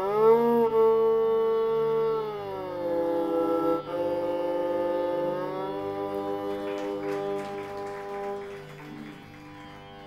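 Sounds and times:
tambura drone: 0:00.0 - 0:10.0
violin long bowed notes: 0:00.0 - 0:10.0.

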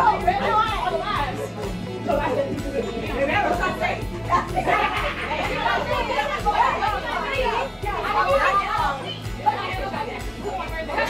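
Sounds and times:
music with a beat: 0:00.0 - 0:11.0
women chattering: 0:00.0 - 0:11.0.

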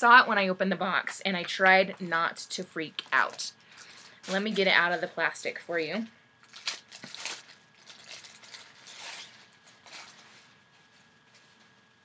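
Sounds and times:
plastic packaging crinkling: 0:03.0 - 0:05.4, 0:06.4 - 0:12.0.

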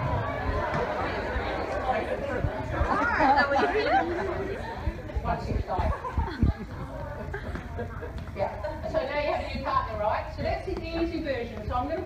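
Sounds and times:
people talking over each other: 0:00.0 - 0:12.0.

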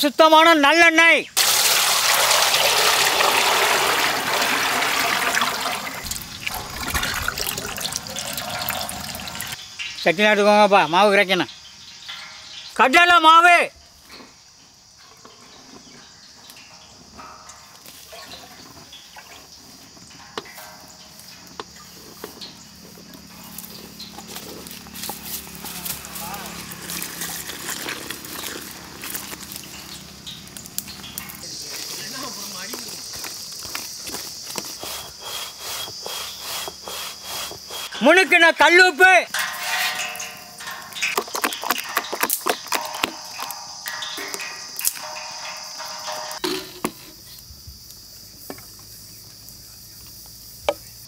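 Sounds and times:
oil pouring into metal pot: 0:01.4 - 0:09.6.

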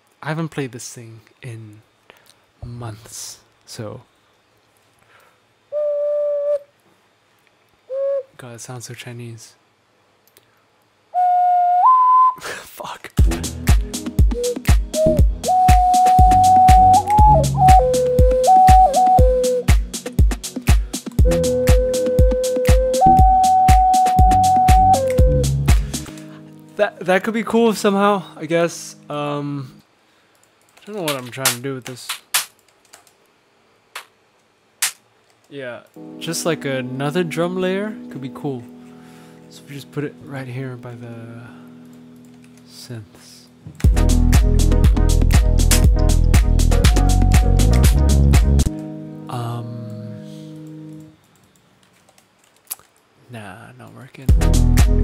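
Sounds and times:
sampled percussive clicks: 0:30.3 - 0:33.3, 0:33.9 - 0:36.0.

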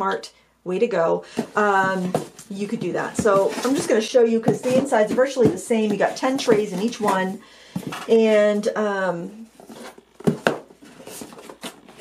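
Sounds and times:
soft cardboard rustling: 0:01.4 - 0:08.6, 0:09.4 - 0:12.0.

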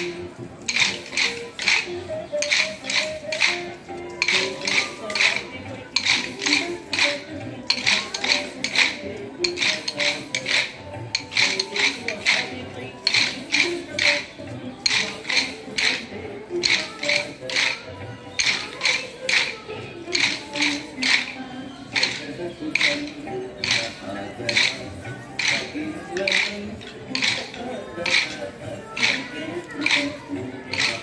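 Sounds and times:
people singing a folk tune: 0:00.0 - 0:31.0
wooden sticks clacking together: 0:00.0 - 0:31.0.

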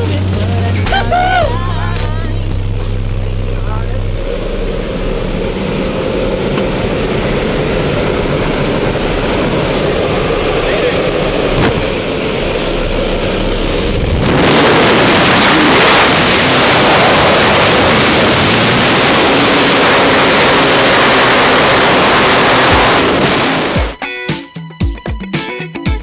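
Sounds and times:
aircraft engine drone: 0:00.0 - 0:24.2
loud rush of wind: 0:04.2 - 0:24.0
wind noise: 0:04.2 - 0:24.0.

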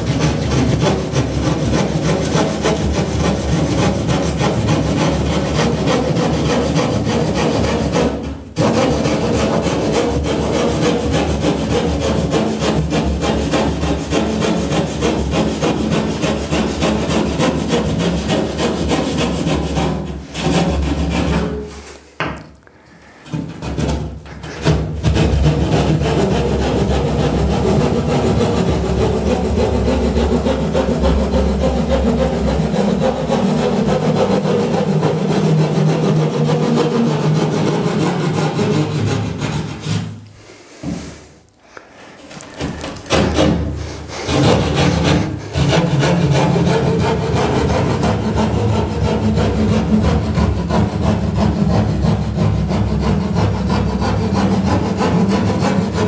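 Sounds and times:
hand saw rasping through plasterboard: 0:00.0 - 0:56.0.

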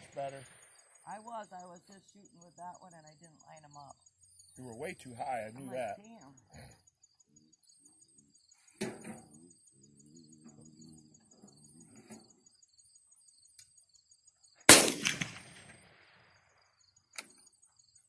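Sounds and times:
insects ticking: 0:00.0 - 0:18.0
handgun shot: 0:14.7 - 0:15.8.

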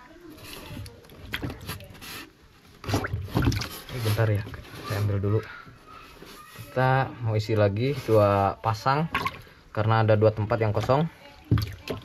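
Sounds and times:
hands splashing in water: 0:02.8 - 0:04.5.

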